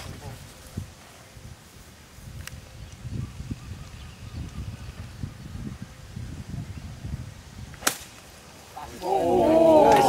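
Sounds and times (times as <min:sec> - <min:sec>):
spectators' voices: 0:08.8 - 0:10.0.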